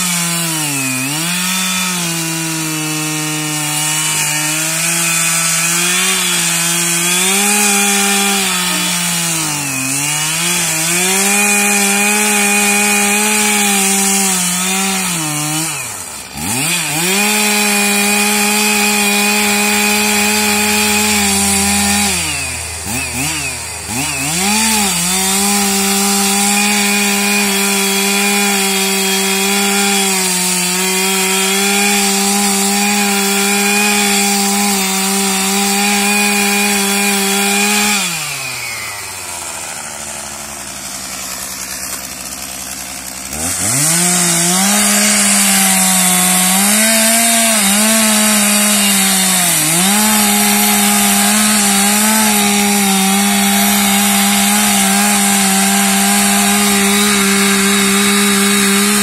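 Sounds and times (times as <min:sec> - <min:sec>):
chainsaw cutting wood: 0:00.0 - 0:59.0.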